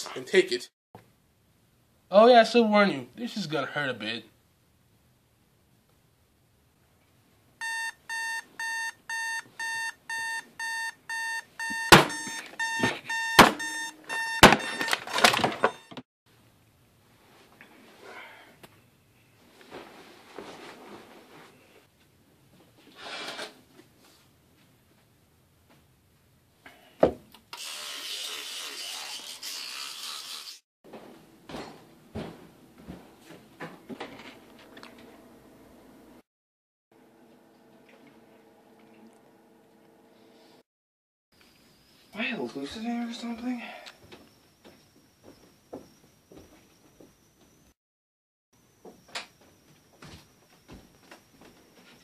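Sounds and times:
digital alarm clock beeping: 7.6 - 15.1
thump: 27.0 - 27.2.

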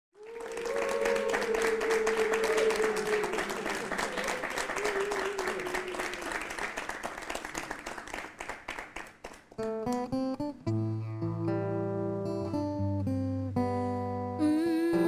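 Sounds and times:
people cheering: 0.2 - 8.0
audience applauding: 0.2 - 10.0.

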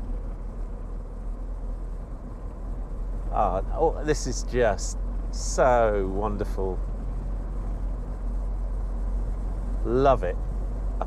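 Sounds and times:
car driving rumble: 0.0 - 11.0
man's voice: 3.3 - 6.8, 9.9 - 10.4.

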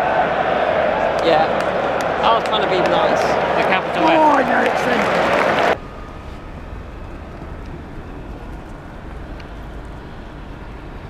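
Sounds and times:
stadium crowd noise: 0.0 - 5.8
low urban background rumble: 3.0 - 11.0.

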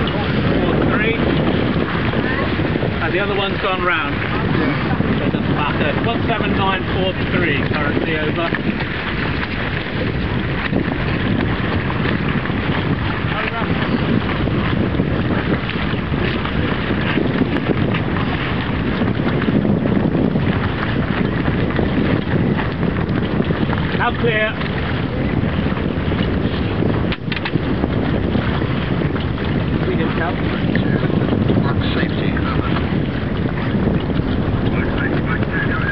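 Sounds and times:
choppy water rushing: 0.0 - 35.9
wind buffeting microphone: 0.0 - 35.9.

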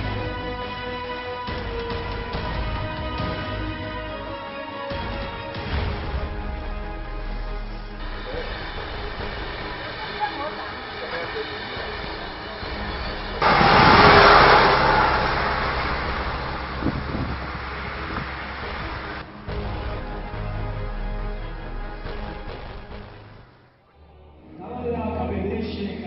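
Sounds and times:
steady music bed: 0.0 - 10.5
vehicle rushing past: 13.4 - 19.3.

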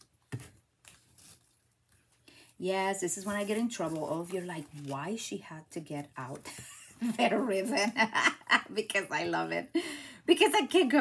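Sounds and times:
ribbon and card rustling: 0.0 - 8.0.

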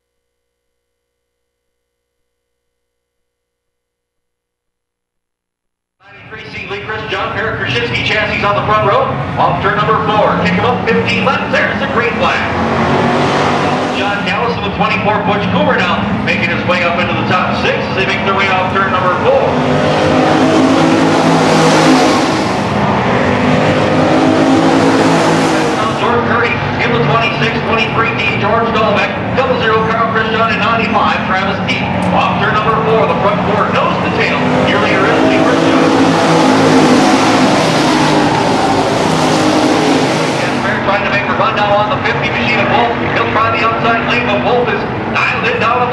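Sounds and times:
race car engines: 6.0 - 45.9.

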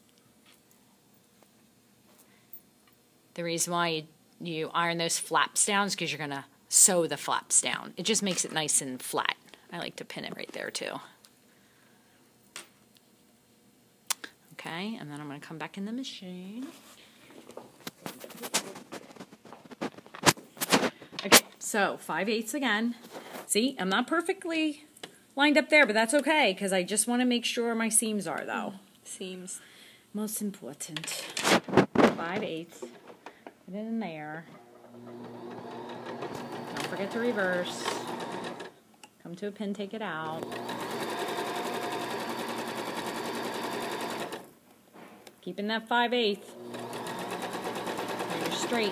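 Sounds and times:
fabric rustling: 16.6 - 21.1
electric sewing machine stitching: 34.6 - 38.8, 40.3 - 44.5, 46.4 - 48.9.

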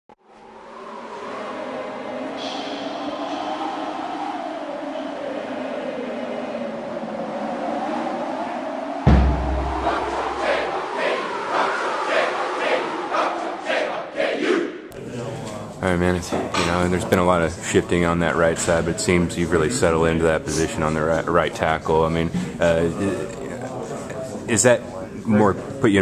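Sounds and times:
crowd noise: 0.3 - 26.0
crowd yelling: 0.4 - 15.2
music: 9.0 - 11.2
deep bass boom: 9.1 - 10.9.

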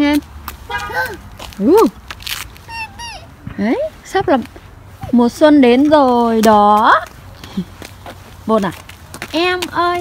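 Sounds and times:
toddler squealing: 2.6 - 3.4.

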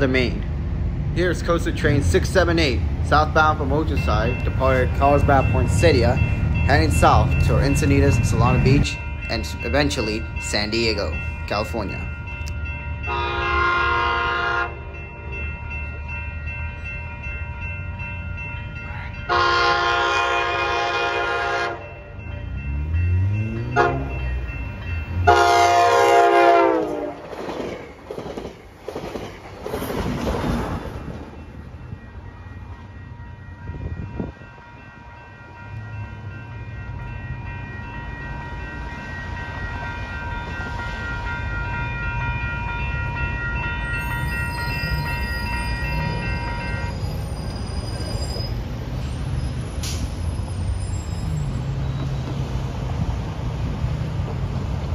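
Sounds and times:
train coaches rolling on rails: 0.0 - 54.9
crossing bell ringing: 1.2 - 29.7, 30.9 - 54.9
train horn blasts: 13.1 - 14.8, 19.3 - 21.9, 23.7 - 24.2, 25.2 - 27.2.

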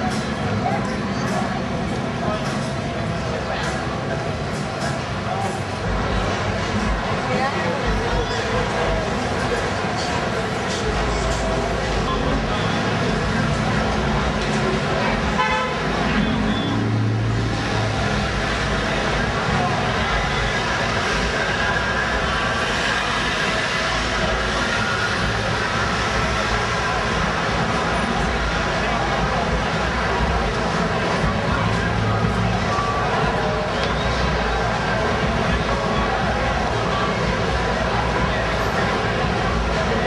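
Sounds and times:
car moving along road: 0.0 - 40.0
indistinct voices: 0.0 - 40.0
people talking: 0.0 - 40.0
traffic rumble: 0.0 - 40.0
car horn toot: 15.0 - 16.9.

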